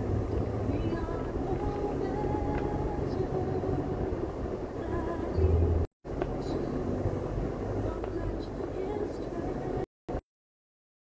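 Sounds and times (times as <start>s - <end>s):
car road and engine rumble: 0.0s - 10.2s.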